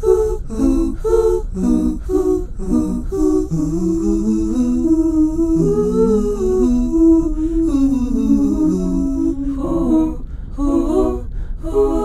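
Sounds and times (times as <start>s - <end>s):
voices humming in harmony: 0.0s - 12.0s.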